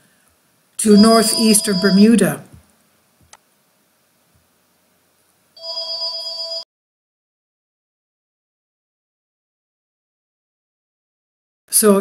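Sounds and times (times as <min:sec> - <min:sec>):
electronic trilling ring tone: 0:01.0 - 0:02.0, 0:05.6 - 0:06.7.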